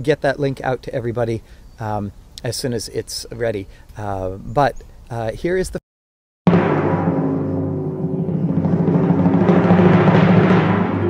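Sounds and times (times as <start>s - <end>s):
timpani roll: 6.5s - 11.0s.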